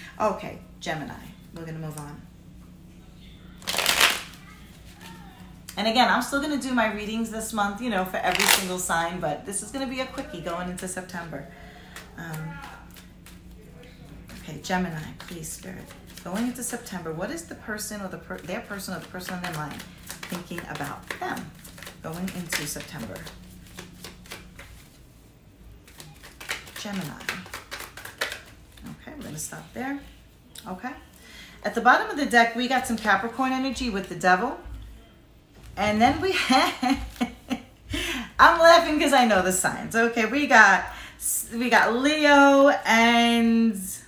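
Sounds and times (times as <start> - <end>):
cards shuffled by hand: 3.6 - 5.2, 8.3 - 8.7, 11.9 - 16.8, 18.3 - 24.9, 25.8 - 29.4.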